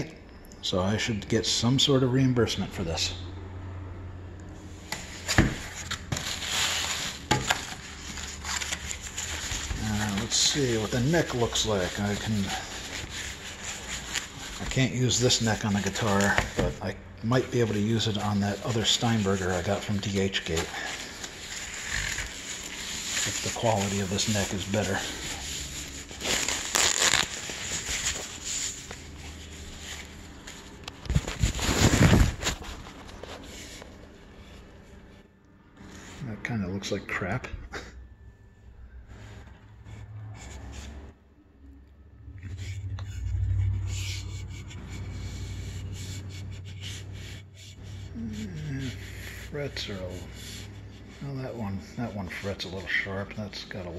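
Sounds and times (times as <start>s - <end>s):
packing wrap rustling and crinkling: 5.2s - 34.1s.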